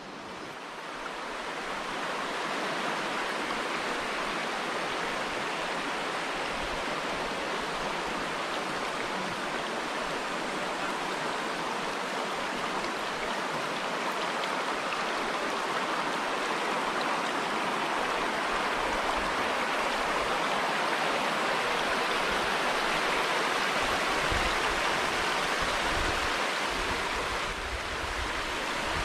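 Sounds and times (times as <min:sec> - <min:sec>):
stream running over stones: 0:00.0 - 0:29.0.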